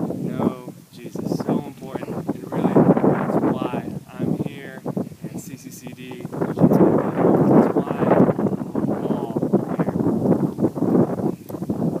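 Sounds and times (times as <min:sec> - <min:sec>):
man vocalizing: 0:00.2 - 0:02.8, 0:03.5 - 0:10.2.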